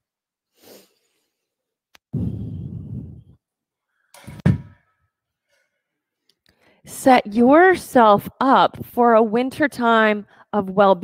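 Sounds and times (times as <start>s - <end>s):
short exhale: 0.6s - 1.0s
low breathy rumble: 2.2s - 3.4s.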